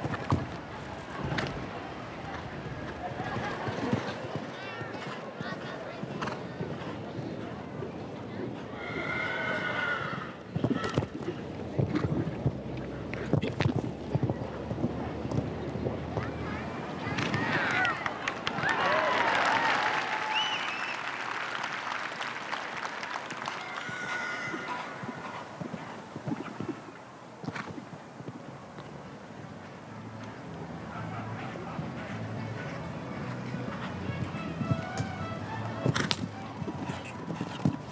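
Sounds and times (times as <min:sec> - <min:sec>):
crowd noise hum: 0:00.0 - 0:37.9
hoofbeats thudding on turf: 0:10.5 - 0:17.8, 0:31.0 - 0:37.9.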